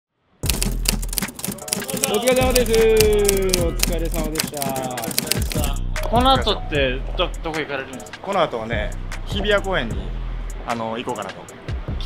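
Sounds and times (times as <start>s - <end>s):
typewriter-like clicking: 0.4s - 5.8s.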